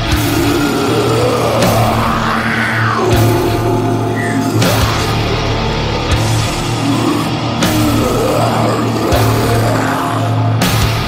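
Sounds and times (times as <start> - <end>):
distorted guitar and bass chord: 0.0 - 11.0.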